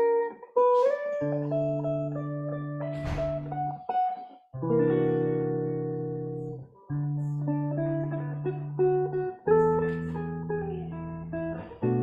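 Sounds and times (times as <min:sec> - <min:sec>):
fingerstyle guitar: 0:00.0 - 0:12.0.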